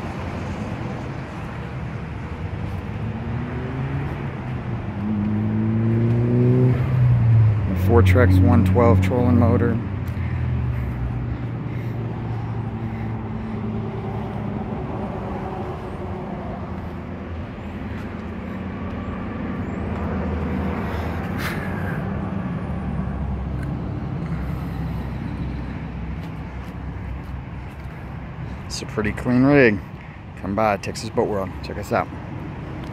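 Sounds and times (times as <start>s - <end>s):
engine humming: 0.0s - 32.9s
outdoor background noise: 0.0s - 32.9s.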